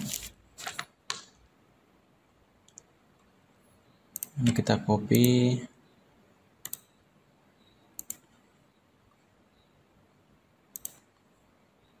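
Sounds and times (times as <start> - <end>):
computer mouse click: 2.7 - 3.3, 4.1 - 4.6, 6.6 - 7.0, 8.0 - 8.4, 10.7 - 11.2.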